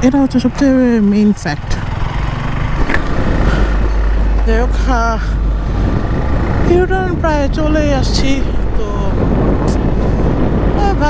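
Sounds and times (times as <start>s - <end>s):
motorcycle engine accelerating: 0.0s - 11.0s
wind rumble on microphone: 0.0s - 11.0s.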